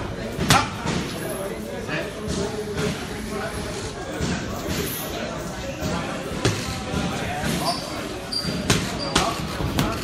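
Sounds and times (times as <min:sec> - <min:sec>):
voices in a gym: 0:00.0 - 0:10.0.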